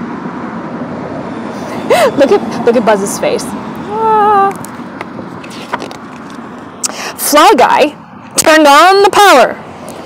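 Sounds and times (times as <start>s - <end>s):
outdoor background noise: 0.0s - 10.0s
book pages turning: 5.4s - 6.4s.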